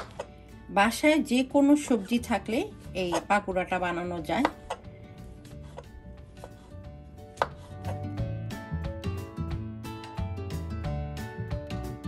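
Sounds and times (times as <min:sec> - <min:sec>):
knife slicing on cutting board: 0:03.0 - 0:03.4, 0:05.4 - 0:08.1.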